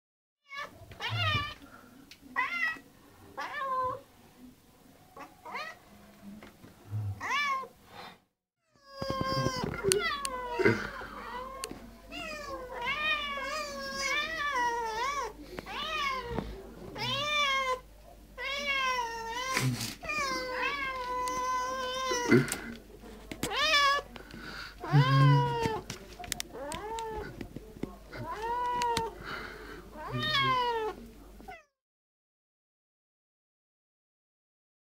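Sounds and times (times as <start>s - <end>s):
cats meowing: 0.5s - 1.6s, 8.8s - 17.8s, 18.4s - 22.6s, 23.4s - 24.1s, 24.8s - 25.8s, 26.5s - 27.4s, 28.1s - 29.2s, 30.0s - 31.7s.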